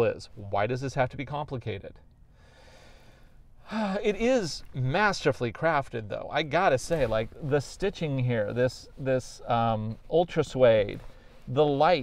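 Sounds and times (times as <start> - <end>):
man speaking: 0.0 - 2.0, 3.7 - 12.0
man inhaling: 2.3 - 4.0.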